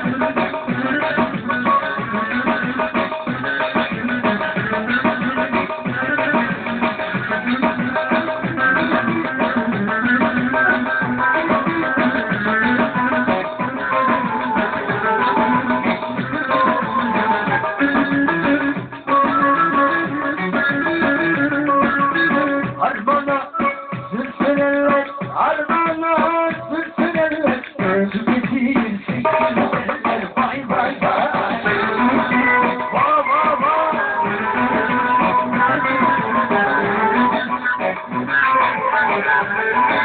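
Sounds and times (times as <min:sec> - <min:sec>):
plucked saz folk melody: 0:00.0 - 0:28.4, 0:29.2 - 0:40.0
keyboard accompaniment: 0:00.0 - 0:40.0.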